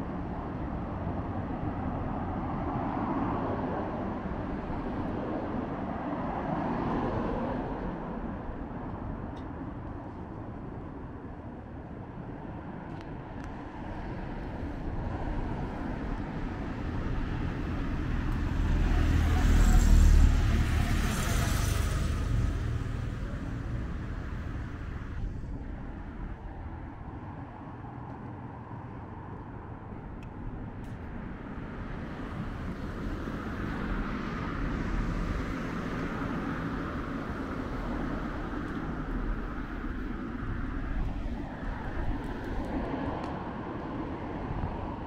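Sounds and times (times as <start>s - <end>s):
cars passing: 0.0s - 9.8s, 12.4s - 45.0s
vehicle passing close: 15.4s - 25.4s.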